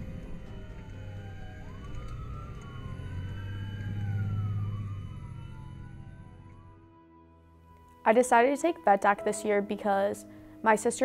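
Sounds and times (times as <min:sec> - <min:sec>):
emergency vehicle sirens wailing: 0:00.0 - 0:09.1.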